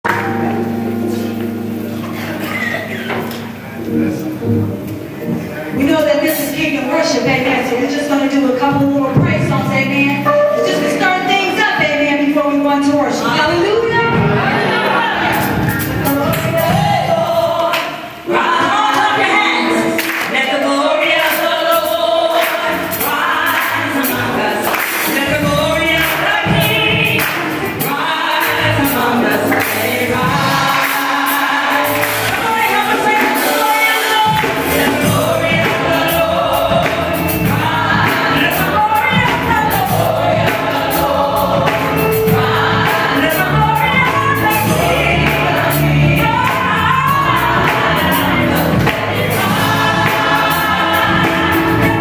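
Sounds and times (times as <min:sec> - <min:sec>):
band playing: 0:00.0 - 0:52.0
keyboard sustained chord: 0:00.1 - 0:05.7, 0:09.8 - 0:13.2
women singing in harmony: 0:05.8 - 0:52.0.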